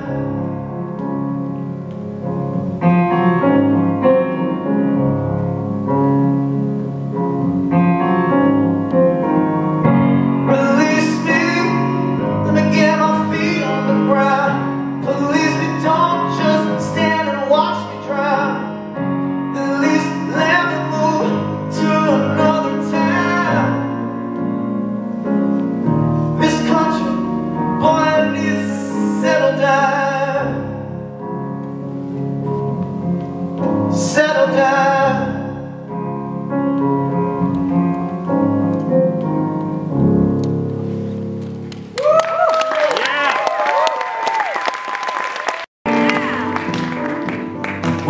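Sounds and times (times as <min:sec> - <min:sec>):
man singing: 0:00.0 - 0:00.7, 0:10.4 - 0:24.2, 0:26.4 - 0:31.0, 0:33.9 - 0:35.8
piano chords on keyboard: 0:00.0 - 0:42.1, 0:45.9 - 0:48.0.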